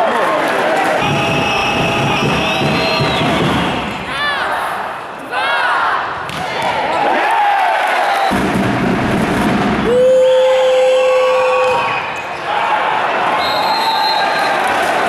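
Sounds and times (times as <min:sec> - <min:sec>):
crowd shouting and chanting: 0:00.0 - 0:08.6, 0:09.7 - 0:15.0.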